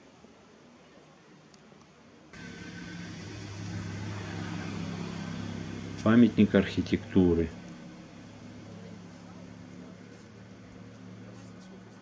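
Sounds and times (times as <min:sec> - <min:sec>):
faint background hiss: 0:00.0 - 0:12.0
low engine hum: 0:02.4 - 0:12.0.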